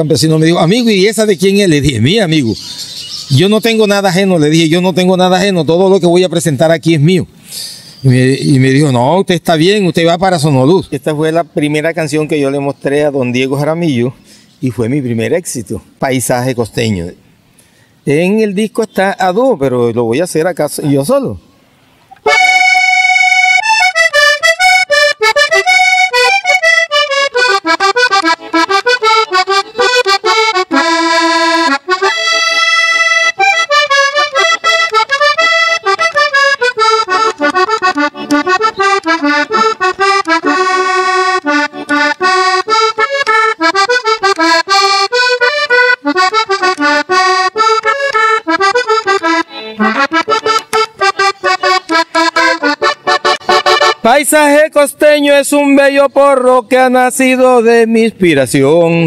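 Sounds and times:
button accordion playing solo: 0:22.2 - 0:54.4.

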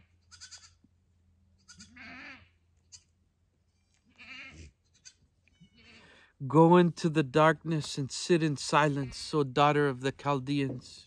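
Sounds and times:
goats bleating: 0:00.0 - 0:00.8, 0:01.6 - 0:02.6, 0:04.1 - 0:06.2, 0:08.8 - 0:09.4.

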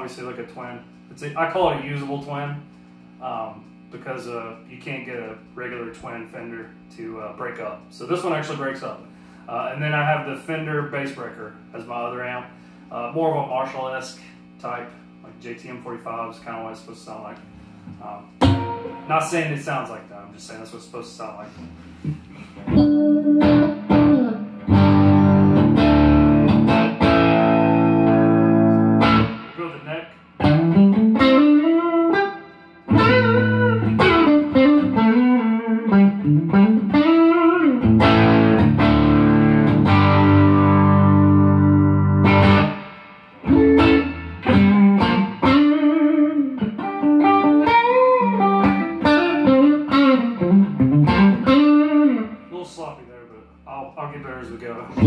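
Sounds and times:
electric guitar through amplifier: 0:17.9 - 0:20.0, 0:21.5 - 0:52.5.

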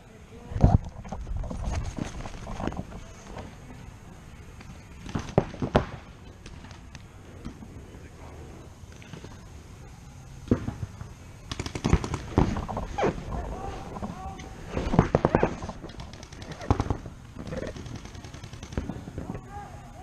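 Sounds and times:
paintball markers firing bursts: 0:04.6 - 0:07.6, 0:10.7 - 0:13.2, 0:14.8 - 0:19.3.

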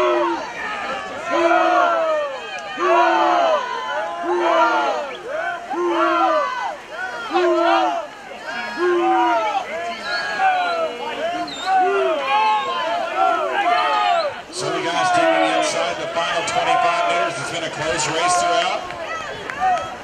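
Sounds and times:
spectators yelling cheers: 0:00.0 - 0:20.0.

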